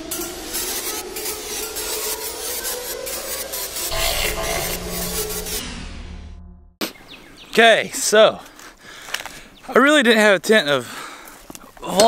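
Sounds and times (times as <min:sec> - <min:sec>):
noisy texture with pulses: 0:03.9 - 0:06.8.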